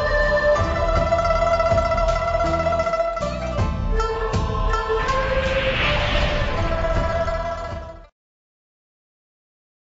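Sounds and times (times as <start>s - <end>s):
music: 0.0s - 8.2s.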